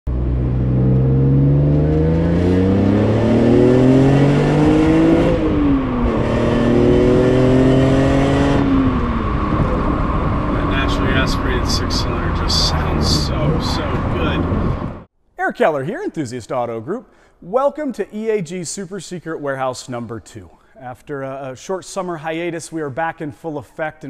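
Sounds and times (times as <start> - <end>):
car engine accelerating: 0.1 - 15.1.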